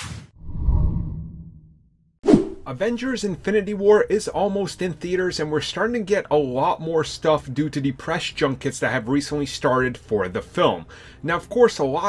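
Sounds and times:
short whoosh: 0:00.0 - 0:02.7.

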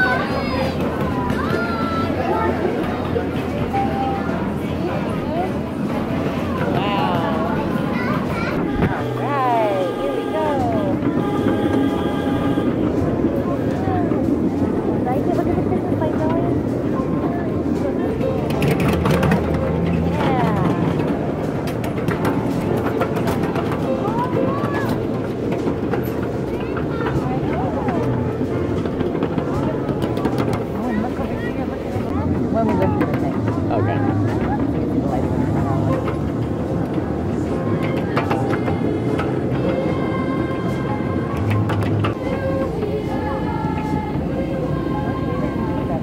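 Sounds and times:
music playing: 0:00.0 - 0:46.0
train rumbling on rails: 0:00.0 - 0:46.0
background voices: 0:12.3 - 0:46.0.

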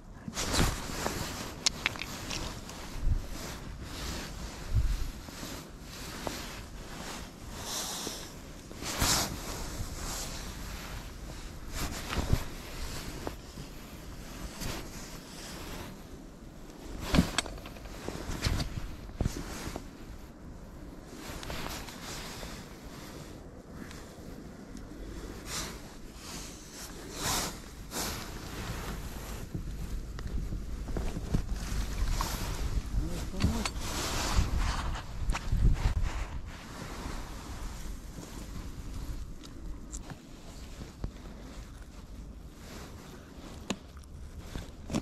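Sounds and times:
faint outdoor background: 0:00.0 - 0:45.0
wind buffeting microphone: 0:00.0 - 0:45.0
winter clothing rustling: 0:00.0 - 0:45.0.

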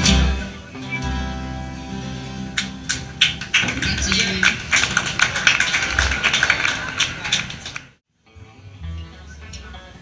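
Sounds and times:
upright double bass: 0:00.0 - 0:05.2, 0:08.3 - 0:09.9
strummed acoustic guitar: 0:00.0 - 0:05.5
electric lead guitar: 0:00.0 - 0:06.2.

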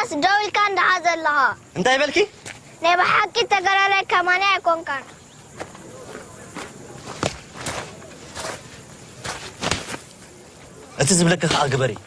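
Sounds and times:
footsteps scuffing: 0:02.4 - 0:02.7, 0:05.0 - 0:10.8.

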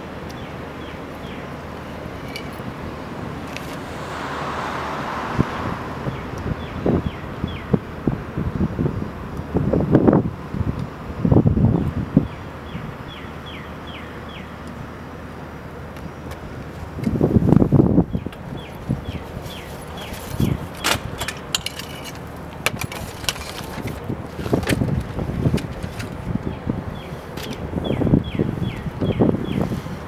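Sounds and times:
low outdoor rumble: 0:00.0 - 0:13.4
wind buffeting microphone: 0:01.2 - 0:14.4, 0:16.4 - 0:21.8, 0:22.4 - 0:30.0
bird chirping: 0:12.2 - 0:14.6.

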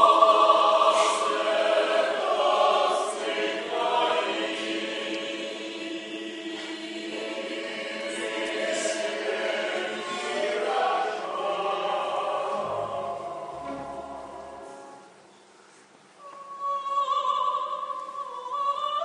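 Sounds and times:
choir singing long notes: 0:00.0 - 0:15.2.

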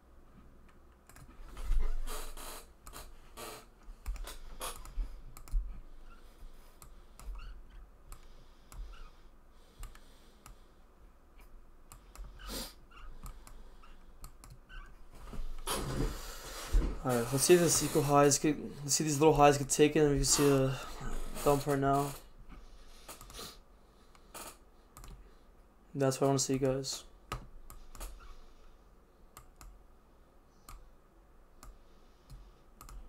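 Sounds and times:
computer mouse clicking: 0:01.0 - 0:01.3, 0:04.0 - 0:05.6, 0:09.8 - 0:10.6, 0:11.4 - 0:12.5, 0:13.2 - 0:14.6, 0:25.0 - 0:25.2, 0:29.4 - 0:29.8, 0:30.6 - 0:30.9, 0:31.6 - 0:33.0.

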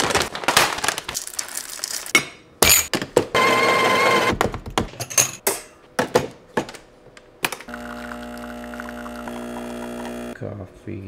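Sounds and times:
espresso machine pump buzzing: 0:07.7 - 0:10.4.

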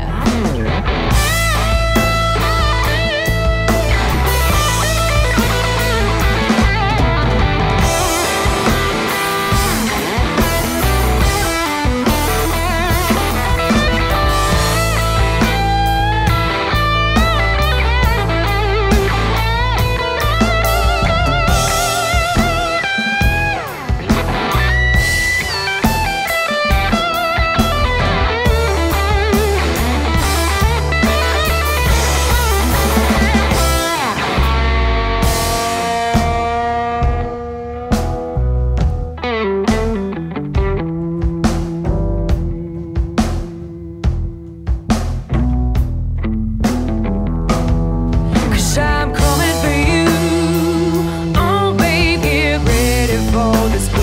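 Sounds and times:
electric guitar solo: 0:00.0 - 0:44.9, 0:45.6 - 0:54.0
bass guitar: 0:00.0 - 0:54.0
drum kit: 0:00.0 - 0:54.0.

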